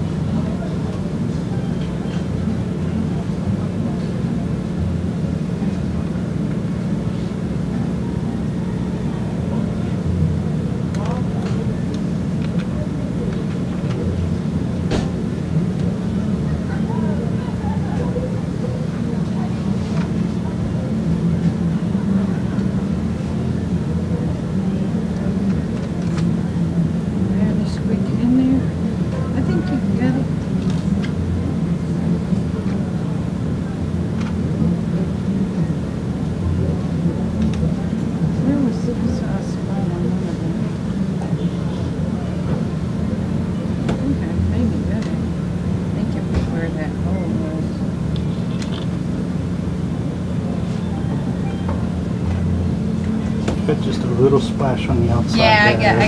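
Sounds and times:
machinery humming: 0.0s - 56.0s
muffled voices: 0.0s - 56.0s.

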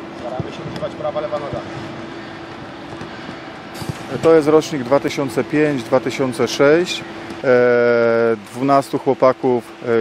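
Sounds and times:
steady hum: 0.0s - 10.0s
football dribbled on grass: 0.2s - 2.0s, 2.8s - 4.4s.

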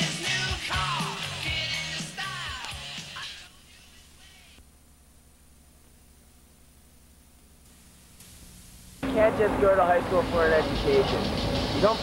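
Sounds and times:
man talking: 9.0s - 11.2s.

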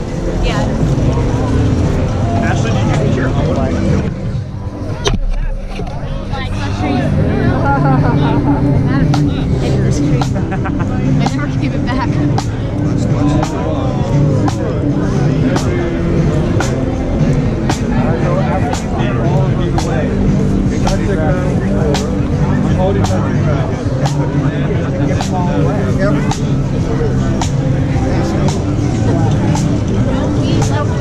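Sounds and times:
low street hum: 0.0s - 31.0s
people chatting: 0.0s - 31.0s.

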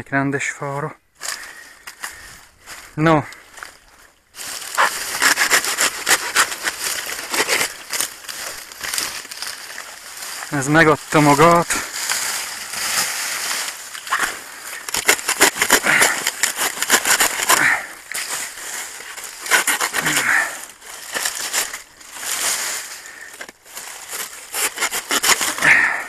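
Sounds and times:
dry leaves rustling and crackling: 3.5s - 25.8s
leaves snapping: 4.4s - 26.0s.

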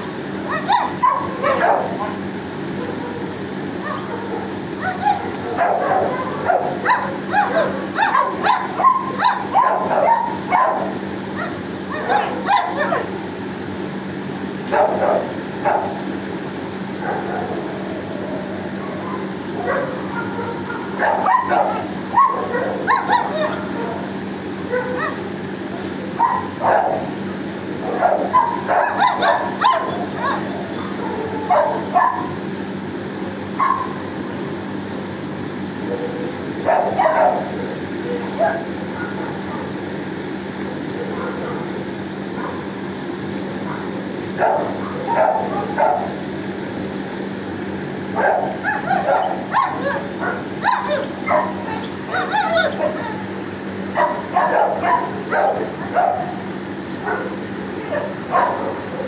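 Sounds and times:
dogs barking and yipping: 0.0s - 13.2s, 14.7s - 16.2s, 16.9s - 32.4s, 33.5s - 34.3s, 35.7s - 39.9s, 40.8s - 42.8s, 43.6s - 46.4s, 48.0s - 59.0s
steady low hum: 0.0s - 59.0s.

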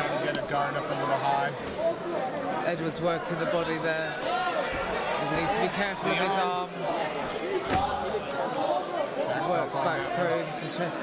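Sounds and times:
crowd shouting: 3.2s - 10.7s.

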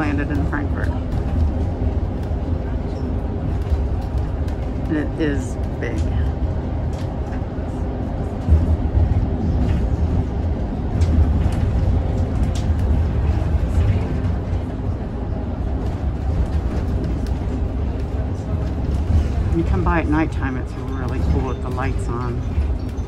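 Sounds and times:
bus engine and tyre rumble: 0.0s - 23.0s.

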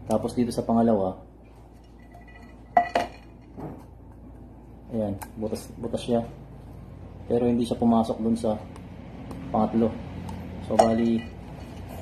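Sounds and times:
tin cans clanking: 1.8s - 3.8s.

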